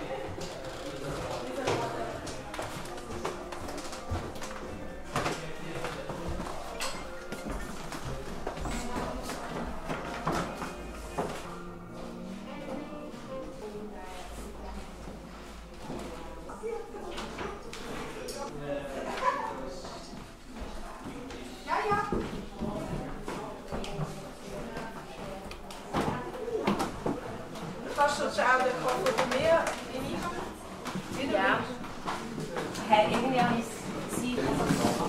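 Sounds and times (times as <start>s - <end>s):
background music: 0.0s - 17.0s
visitors chattering: 0.0s - 35.0s.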